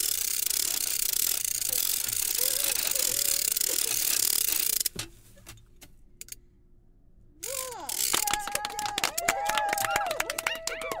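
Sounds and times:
fast hand clapping: 8.0 - 11.0
audience cheering: 8.1 - 11.0.

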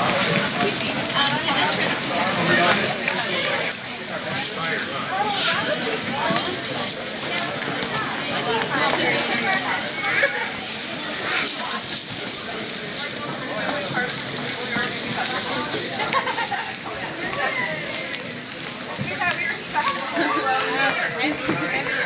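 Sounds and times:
voices chattering: 0.0 - 22.0.

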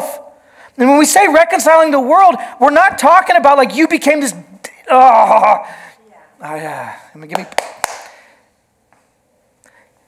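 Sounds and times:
man speaking: 6.4 - 7.6.

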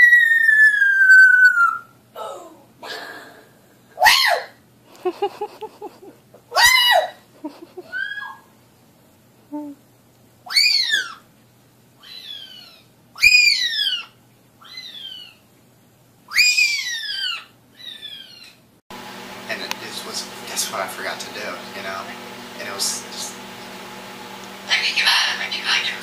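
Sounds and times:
parrot whistling loudly: 0.0 - 1.9, 7.9 - 8.5, 10.5 - 11.2, 12.0 - 15.4, 16.3 - 18.4.

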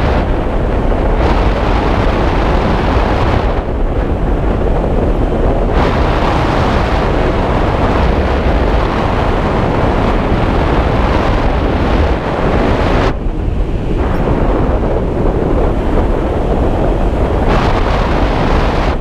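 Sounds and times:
wind rushing over microphone: 0.0 - 19.0.

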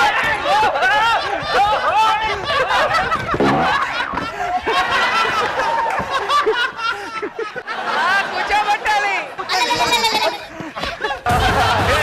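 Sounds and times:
people laughing: 0.2 - 12.0.

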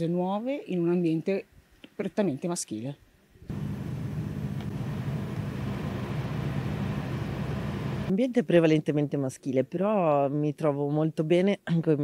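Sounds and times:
machinery engine running steadily: 3.5 - 8.1.

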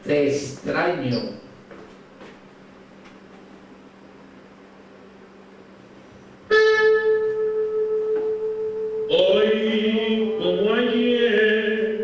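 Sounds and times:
faint low hum: 0.0 - 12.0
sustained keyboard note: 6.4 - 11.0.

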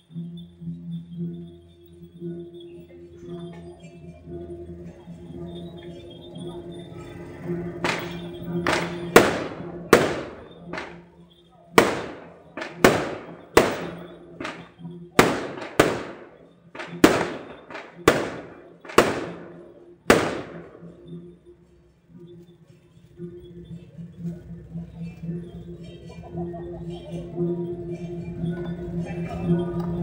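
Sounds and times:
background music: 0.0 - 30.0
firecrackers banging: 7.8 - 21.1.

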